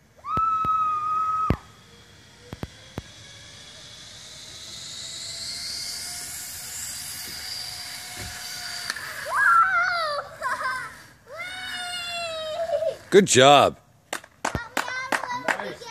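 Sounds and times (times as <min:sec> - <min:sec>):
high steady squeal: 0:00.0 - 0:13.4
pulley wheels whirring on cable: 0:00.0 - 0:13.4.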